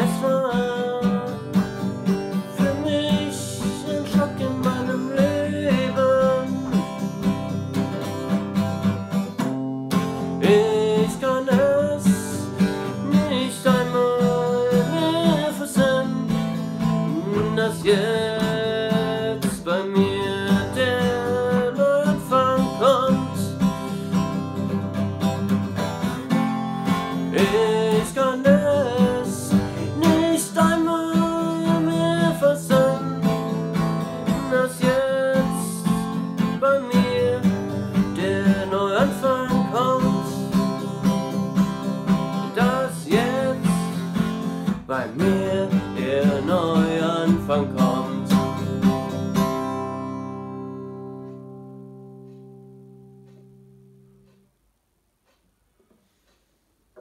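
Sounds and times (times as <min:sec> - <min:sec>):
man singing: 0:00.0 - 0:01.8, 0:02.4 - 0:07.1, 0:10.4 - 0:24.0, 0:27.0 - 0:49.2
acoustic guitar strummed: 0:00.0 - 0:54.6.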